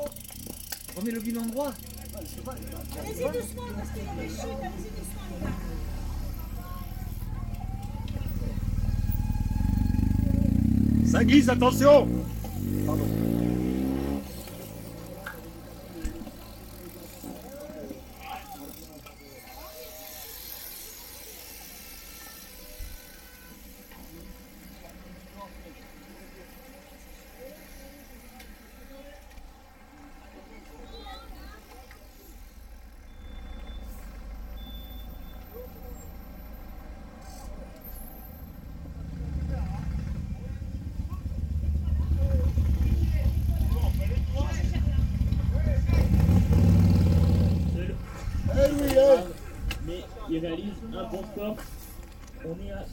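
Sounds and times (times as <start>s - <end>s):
vehicle passing: 0.0s - 19.0s, 35.8s - 52.1s
engine rumble: 0.0s - 19.4s, 31.7s - 52.9s
quiet roadside ambience: 0.0s - 52.9s.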